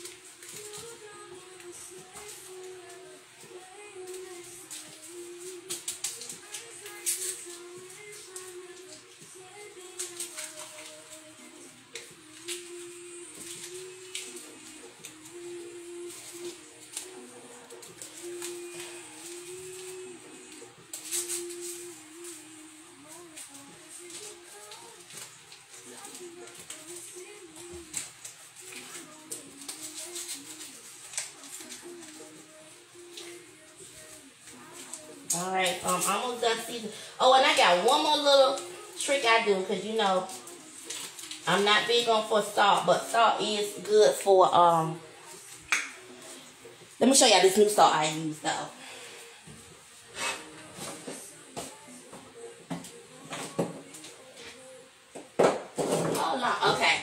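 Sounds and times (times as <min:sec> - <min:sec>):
seasoning rattling in shaker: 0:23.0 - 0:33.2.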